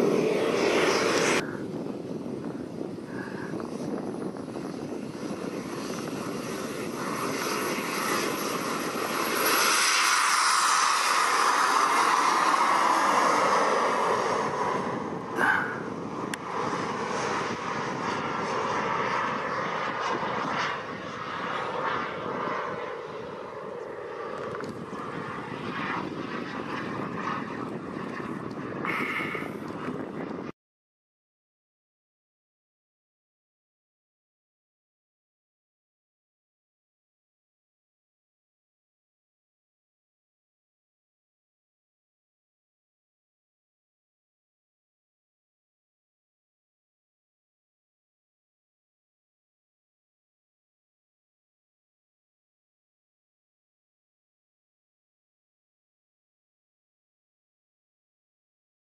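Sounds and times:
model jet turbine whine: 0.0s - 30.6s.

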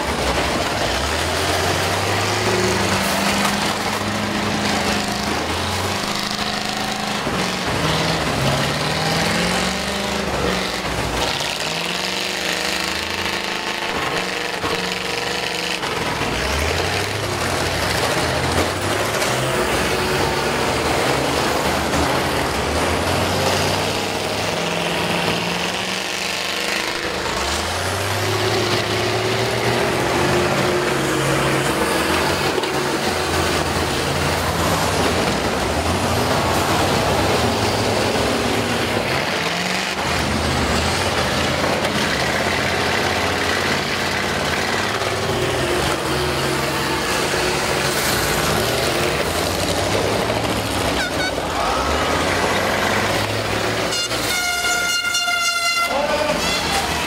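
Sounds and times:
bus engines revving: 0.0s - 57.0s.

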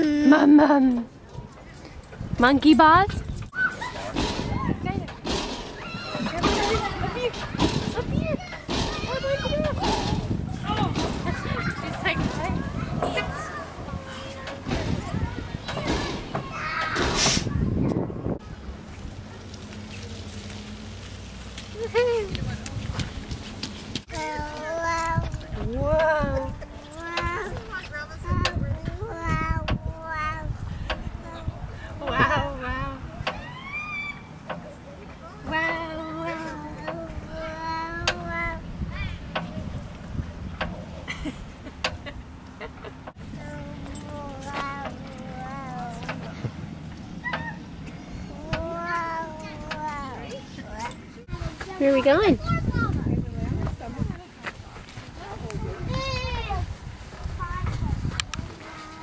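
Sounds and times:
background voices: 34.6s - 38.8s, 43.2s - 47.1s
toddler vocalizing wow: 47.2s - 50.4s.

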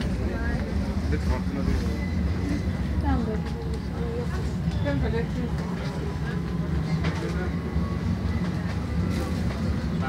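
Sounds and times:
tram rumbling on rails: 0.0s - 10.0s.

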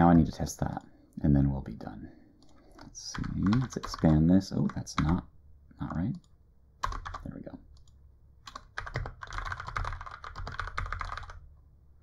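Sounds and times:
fast typing on keyboard: 2.4s - 5.2s, 6.8s - 7.9s, 8.5s - 11.4s.

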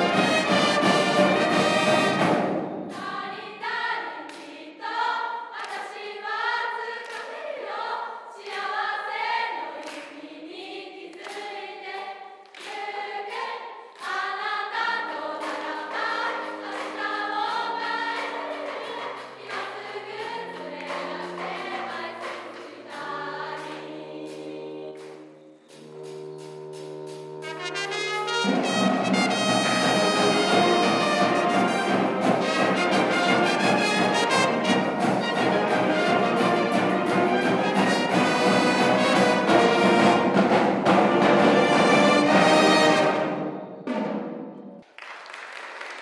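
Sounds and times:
women singing together: 3.0s - 25.3s
steady sharp beat: 25.7s - 43.3s.

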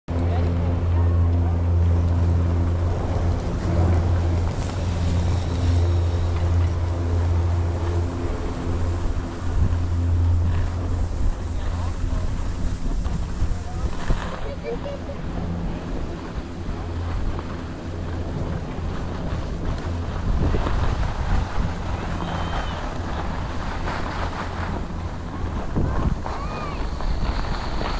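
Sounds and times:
steady low hum: 0.1s - 27.9s
wind rushing over microphone: 0.1s - 27.9s.

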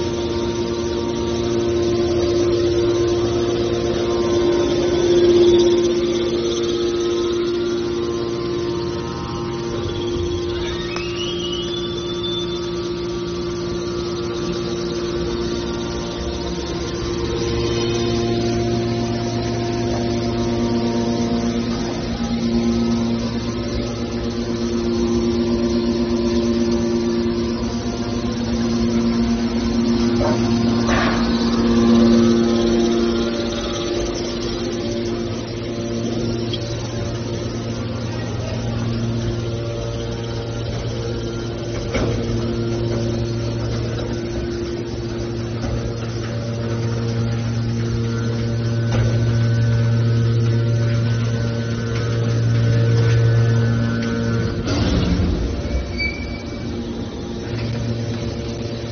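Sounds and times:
hydraulic power unit humming: 0.0s - 58.9s.

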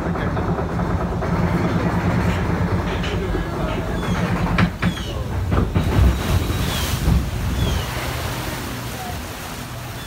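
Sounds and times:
low rumble: 0.0s - 9.7s
water rushing and churning: 0.0s - 10.0s
wind buffeting microphone: 0.0s - 10.0s.

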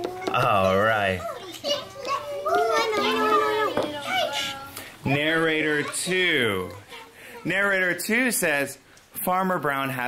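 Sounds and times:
children talking: 0.0s - 8.0s.

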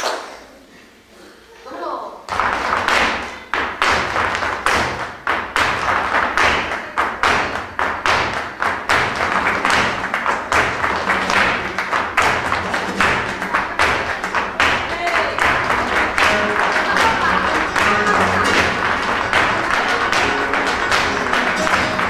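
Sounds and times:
flamenco music: 2.3s - 22.0s
shoes stamping on stage floor: 2.3s - 22.0s.

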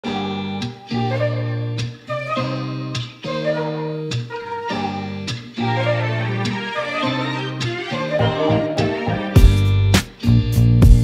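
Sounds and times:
sustained chords: 5.7s - 9.9s.

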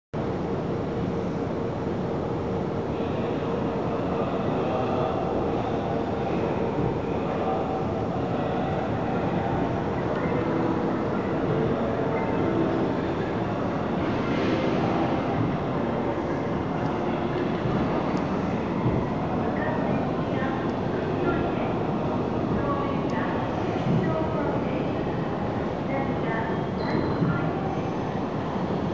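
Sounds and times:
trains rumbling in station hall: 0.2s - 28.9s.

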